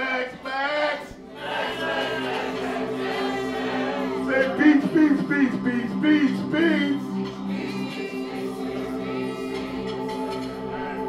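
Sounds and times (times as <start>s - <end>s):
group chanting call-and-response: 0.0s - 11.0s
electronic music with low drone: 1.2s - 11.0s.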